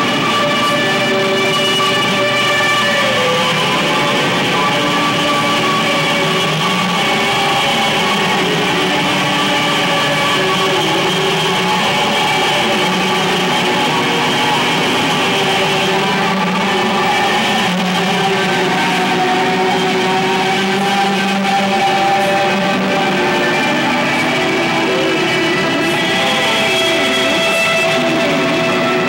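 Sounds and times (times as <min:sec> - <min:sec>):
electric guitar sustained chords: 0:00.0 - 0:29.0.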